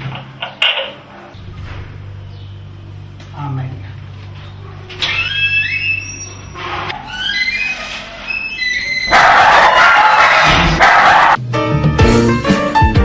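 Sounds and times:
dog yipping and whining: 5.0 - 11.4.

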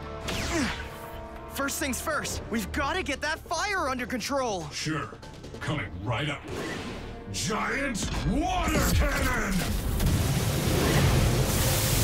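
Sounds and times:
rushing water spray: 9.7 - 12.0.

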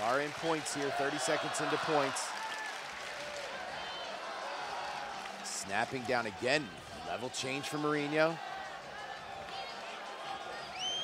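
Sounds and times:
crowd cheering: 0.0 - 11.0.

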